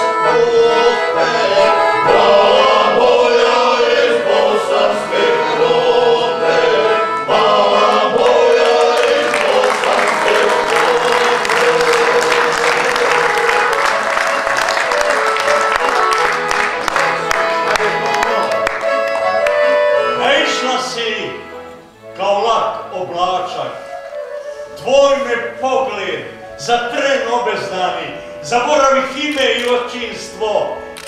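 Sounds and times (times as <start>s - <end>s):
accordion: 0.0s - 31.0s
men singing together: 0.2s - 13.7s.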